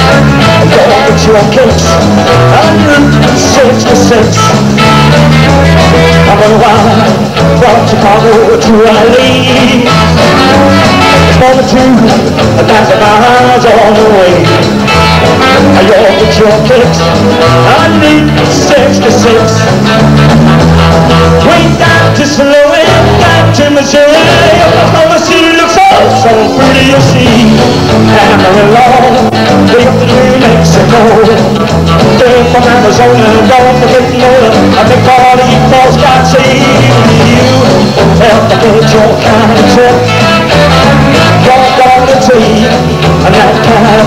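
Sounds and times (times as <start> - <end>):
man singing into microphone: 0.0 - 19.8, 21.1 - 44.0
bass guitar: 0.0 - 44.0
drums: 0.0 - 44.0
electric guitar: 0.0 - 44.0
live rock and roll band: 0.0 - 44.0
saxophone melody: 9.7 - 11.4, 39.9 - 41.8.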